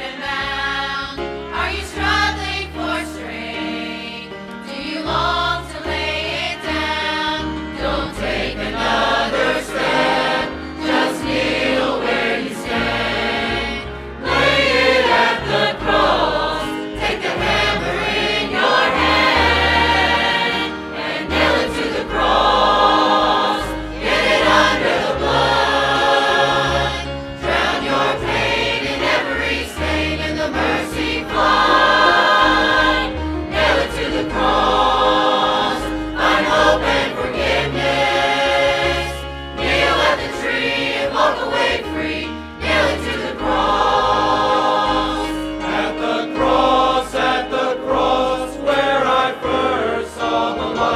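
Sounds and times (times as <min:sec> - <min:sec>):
choir singing gospel: 0:00.0 - 0:50.9
instrumental accompaniment with bass: 0:00.0 - 0:50.9.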